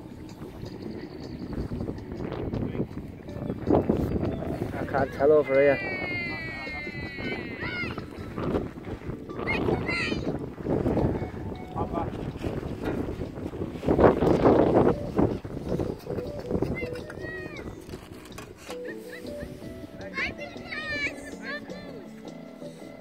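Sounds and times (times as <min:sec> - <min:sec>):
wind on microphone: 0:00.0 - 0:21.1.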